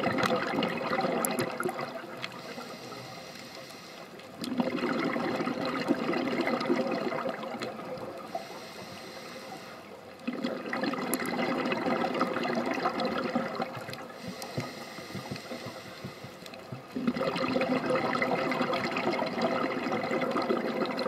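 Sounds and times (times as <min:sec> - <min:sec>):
diver's bubbles rushing underwater: 0:00.0 - 0:02.4, 0:04.4 - 0:08.4, 0:10.2 - 0:14.6, 0:15.5 - 0:21.0
quiet water noise: 0:00.0 - 0:21.0.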